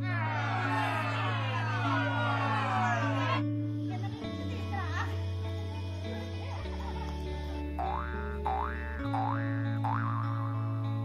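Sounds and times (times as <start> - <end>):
backing music: 0.0 - 11.0.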